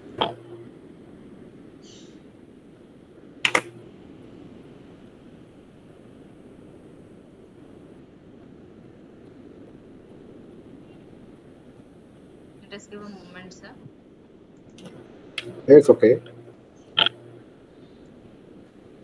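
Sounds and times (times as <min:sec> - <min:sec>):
open microphone background noise: 0:00.0 - 0:19.0
sharp double click: 0:03.4 - 0:03.8, 0:17.0 - 0:17.2.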